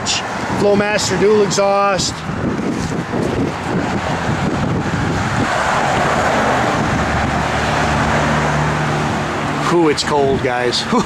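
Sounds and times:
wind buffeting the microphone: 0.0s - 9.4s.

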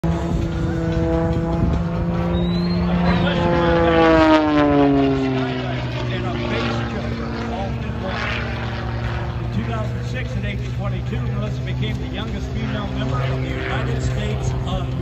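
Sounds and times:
propeller plane flying past: 0.0s - 15.0s.

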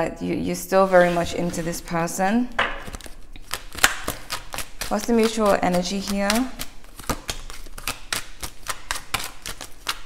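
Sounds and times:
cards being shuffled: 2.8s - 10.0s.

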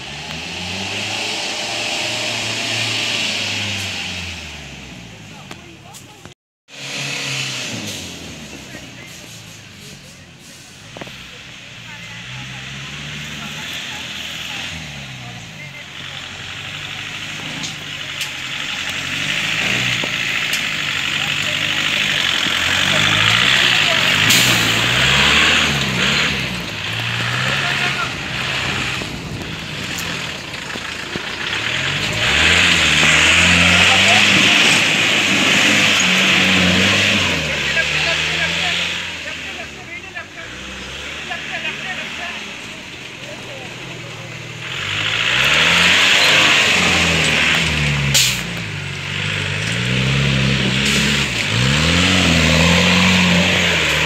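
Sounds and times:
jeep engine revving hard: 0.0s - 5.3s, 6.7s - 9.8s, 10.7s - 54.0s.

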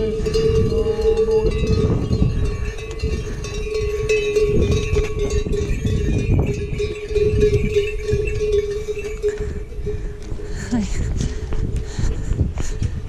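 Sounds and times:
animal neck bell clanking: 0.0s - 11.5s.

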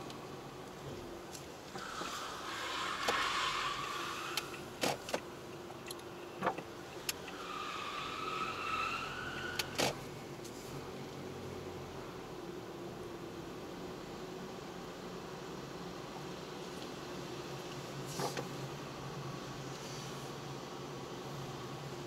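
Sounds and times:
road and engine noise: 0.0s - 22.0s
tyres squealing: 1.8s - 4.7s, 7.2s - 9.8s.

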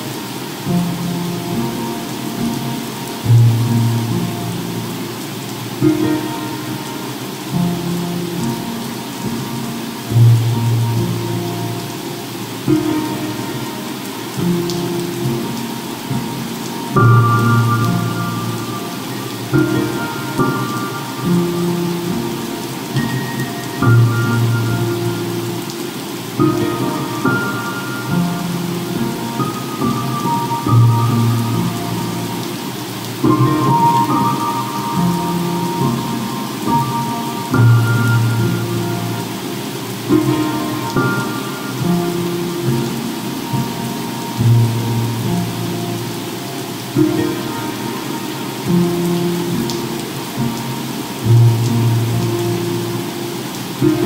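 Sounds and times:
ocean surf: 0.0s - 51.3s
fireplace crackling: 0.0s - 54.0s
soft piano music: 0.0s - 54.0s.

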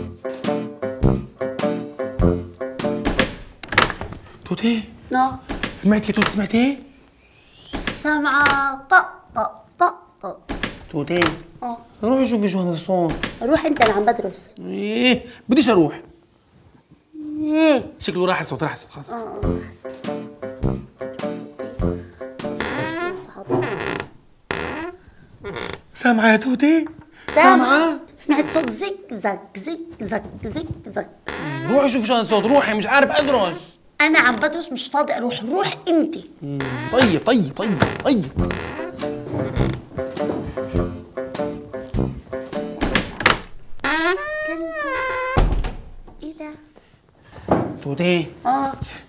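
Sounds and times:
light background music: 0.0s - 3.8s, 19.0s - 24.0s, 36.9s - 43.3s
door creaking: 3.0s - 4.3s, 5.4s - 6.6s, 7.7s - 8.9s, 10.4s - 11.6s, 13.0s - 14.2s, 22.4s - 26.0s, 26.9s - 28.8s, 31.2s - 34.7s, 36.4s - 41.0s, 41.9s - 46.2s.

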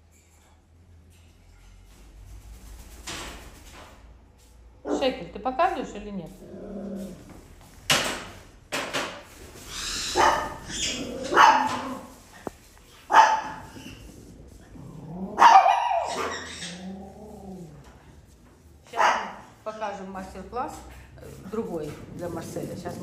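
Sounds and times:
dog barking: 10.2s - 10.7s, 11.3s - 12.0s, 13.1s - 13.7s, 15.4s - 16.4s, 18.9s - 19.5s
dog whining: 15.6s - 17.1s.

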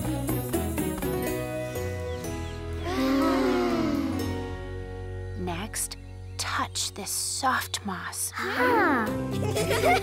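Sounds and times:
gentle cartoon music: 0.0s - 10.0s
voices sighing contentedly: 2.8s - 4.9s.

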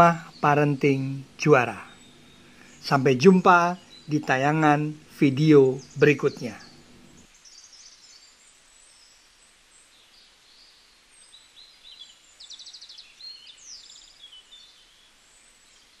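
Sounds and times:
bird trills: 0.0s - 8.2s
birds chirping: 0.0s - 16.0s
light steady hiss: 0.0s - 16.0s.

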